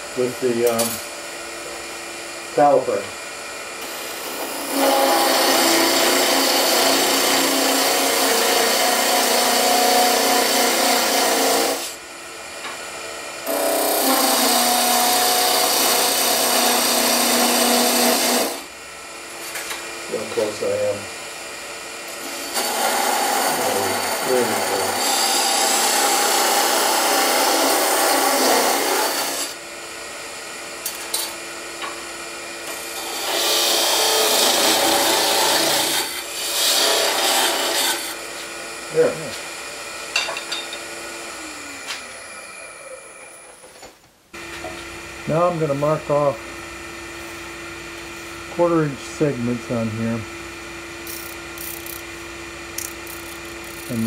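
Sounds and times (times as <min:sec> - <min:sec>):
wood lathe running: 0:03.8 - 0:11.9, 0:13.4 - 0:18.6, 0:22.0 - 0:29.6, 0:32.6 - 0:39.3, 0:52.7 - 0:54.0
parting tool cutting wood: 0:22.2 - 0:29.6, 0:32.7 - 0:39.4, 0:51.0 - 0:52.1, 0:52.7 - 0:54.0.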